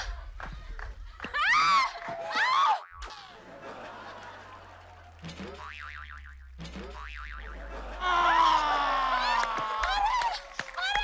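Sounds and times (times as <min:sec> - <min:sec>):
low hum: 0:02.9 - 0:09.2
comedy boing sound effect: 0:05.2 - 0:07.8.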